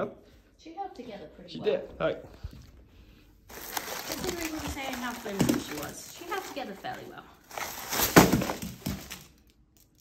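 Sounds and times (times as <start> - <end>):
paper rustling: 3.5 - 9.5
pinata slammed on carpet: 7.9 - 9.2.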